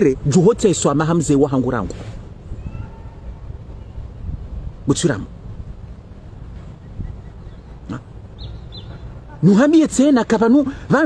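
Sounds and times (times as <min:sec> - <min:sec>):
small bird chirps: 0:06.6 - 0:09.2.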